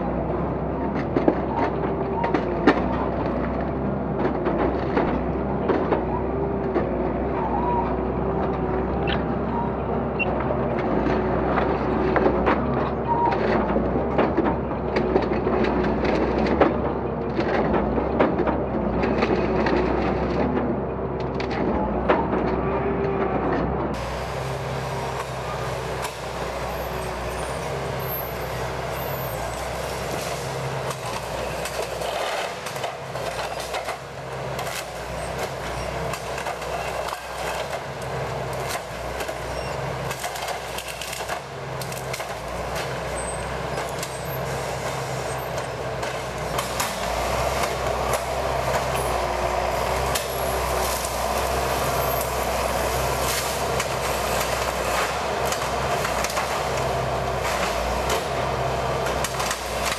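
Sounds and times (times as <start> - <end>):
diesel engine running under load: 0.0 - 59.9
hydraulics working: 0.0 - 59.9.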